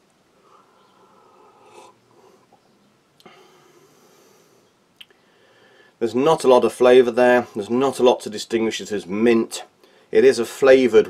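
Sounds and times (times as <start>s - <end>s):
breathing: 3.2s - 6.0s, 9.8s - 10.1s.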